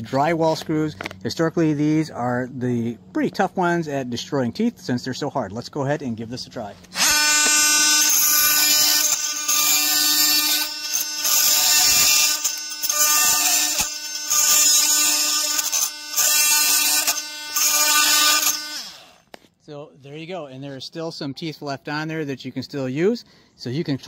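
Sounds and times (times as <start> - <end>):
oscillating multi-tool cutting screws: 6.9 - 19.4.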